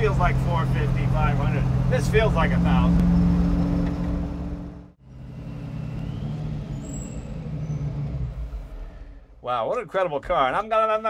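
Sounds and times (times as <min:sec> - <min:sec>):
supercharged car engine running: 0:00.0 - 0:09.4.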